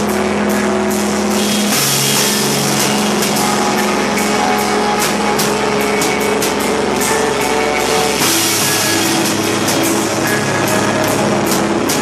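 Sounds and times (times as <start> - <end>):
distorted electric guitars: 0.0 - 12.0
drums and cymbals: 0.0 - 12.0
screamo band playing: 0.0 - 12.0.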